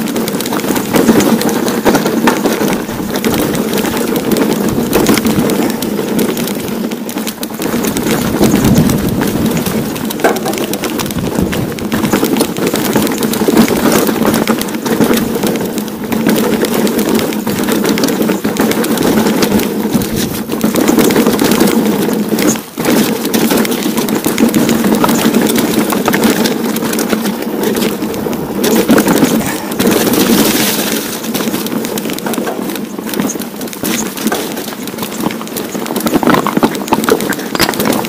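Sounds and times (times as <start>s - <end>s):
mountain bike rattling: 0.0s - 38.0s
tyres crunching on stone: 0.0s - 38.0s.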